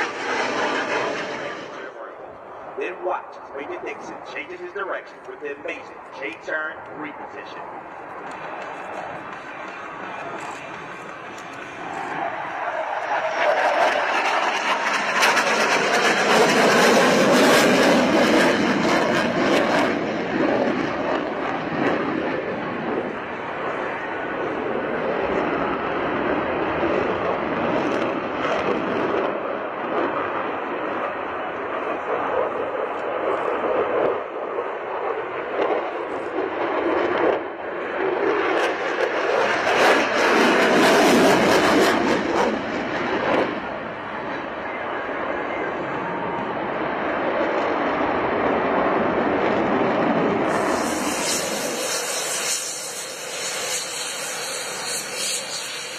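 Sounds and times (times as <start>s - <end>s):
jet engine roar: 0.0s - 55.9s
afterburners lighting: 50.4s - 55.9s.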